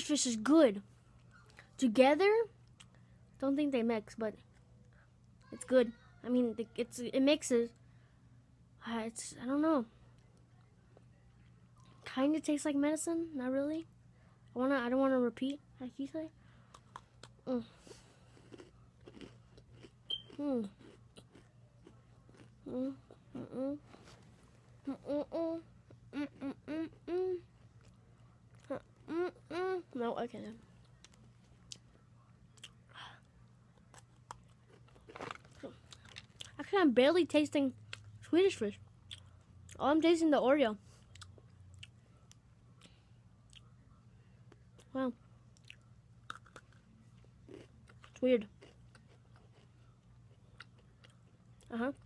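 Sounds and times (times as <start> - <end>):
steady low hum: 0.0 - 52.0
faint chewing of cookie: 2.6 - 3.2, 16.4 - 36.7, 37.8 - 39.8, 40.8 - 52.0
chewing mouth sounds: 18.3 - 23.4, 45.6 - 46.9.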